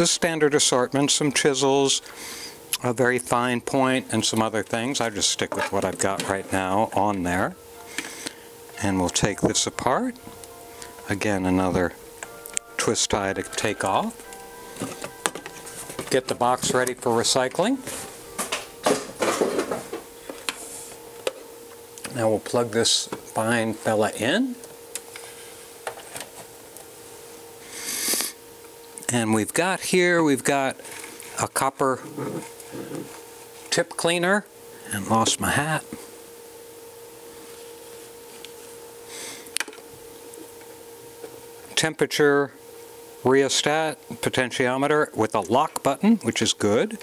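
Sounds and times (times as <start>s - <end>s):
faint steady hum: 0.0s - 47.0s.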